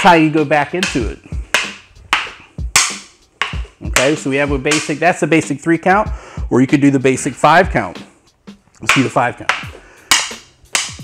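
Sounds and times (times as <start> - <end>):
training sticks clacking together: 0.0 - 5.4, 8.7 - 11.0.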